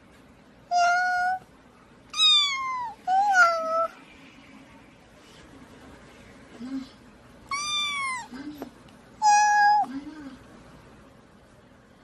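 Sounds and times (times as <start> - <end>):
cat meowing: 0.7 - 1.4, 2.1 - 4.0, 7.5 - 8.4, 9.2 - 9.9.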